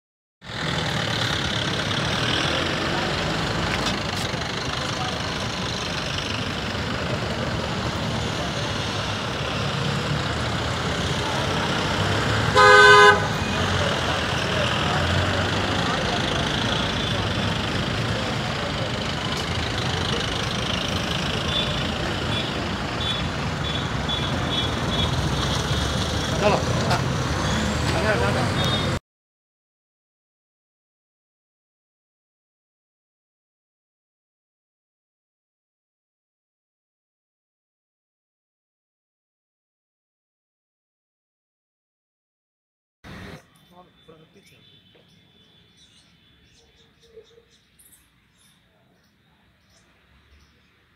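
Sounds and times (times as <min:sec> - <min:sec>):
traffic: 0:00.4 - 0:29.0, 0:43.0 - 0:50.9
people talking: 0:01.6 - 0:12.2, 0:13.0 - 0:23.1, 0:26.2 - 0:27.2, 0:27.9 - 0:29.0, 0:43.3 - 0:45.1
vehicle horn blast: 0:12.4 - 0:13.8, 0:21.5 - 0:25.2.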